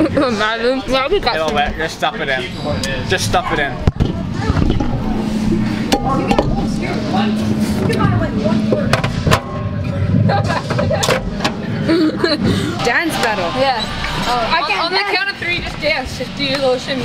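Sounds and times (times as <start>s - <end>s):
laughter: 0.0s - 0.4s, 11.8s - 12.7s
steady low hum: 0.0s - 17.0s
voices: 0.0s - 17.0s.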